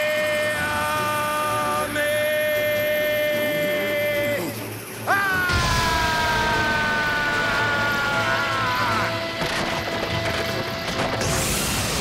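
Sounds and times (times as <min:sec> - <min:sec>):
person shouting battle yell: 0:00.0 - 0:09.2.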